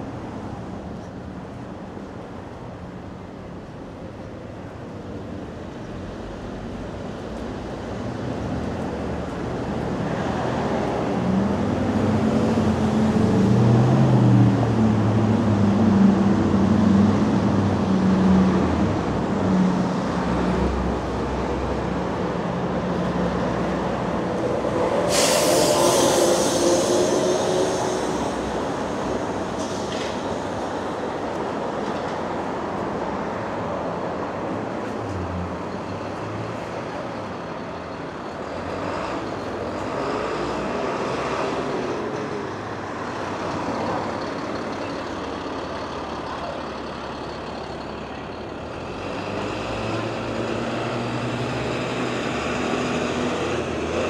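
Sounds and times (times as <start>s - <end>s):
street traffic: 0.0s - 54.0s
loud hiss: 25.0s - 28.5s.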